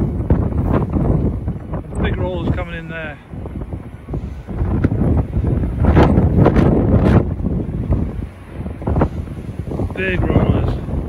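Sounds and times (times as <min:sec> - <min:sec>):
storm wind buffeting microphone: 0:00.0 - 0:11.0.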